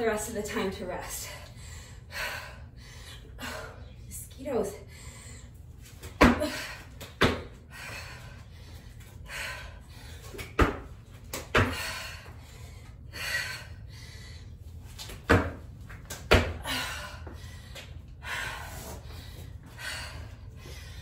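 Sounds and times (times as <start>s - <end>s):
hard breathing: 1.1s - 4.1s, 7.6s - 10.4s, 11.6s - 14.8s, 16.6s - 21.0s.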